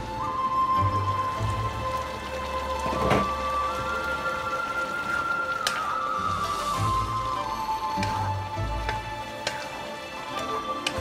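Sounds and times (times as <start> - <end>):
soft background music: 0.0 - 11.0
vegetables sizzling in a wok: 1.3 - 11.0.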